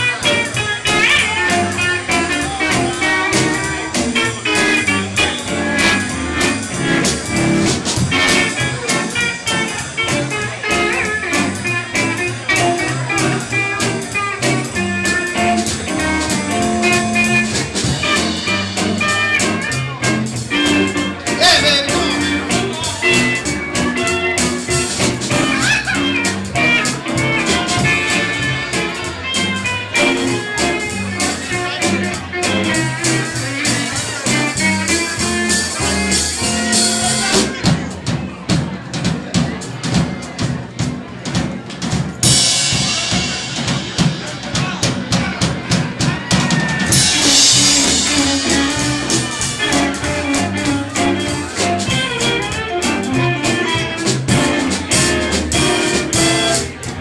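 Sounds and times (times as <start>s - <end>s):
western swing band playing: 0.0s - 57.0s
drum break with cymbal wash: 32.4s - 57.0s.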